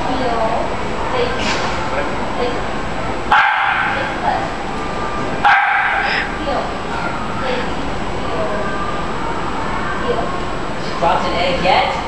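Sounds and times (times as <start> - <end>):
dog barking: 3.3 - 4.2, 5.4 - 6.3.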